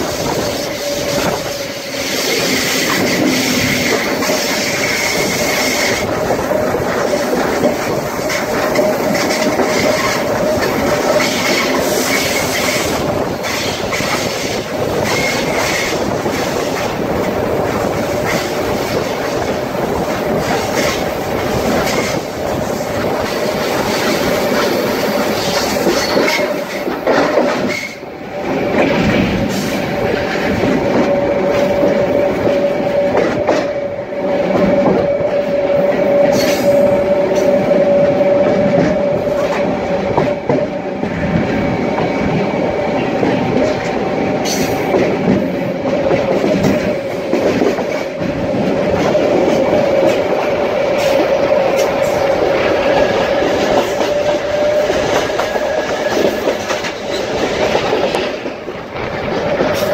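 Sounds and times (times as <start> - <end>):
steady train whine: 0.0 - 59.9
train rail rumble: 0.0 - 59.9.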